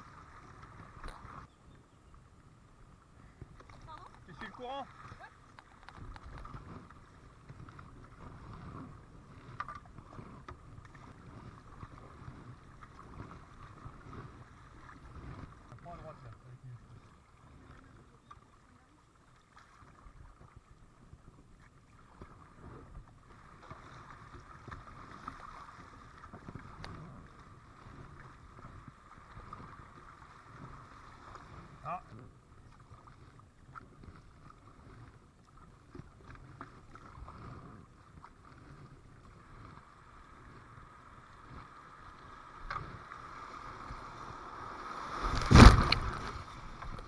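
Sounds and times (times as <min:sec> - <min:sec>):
water washing around kayak: 0:02.2 - 0:47.0.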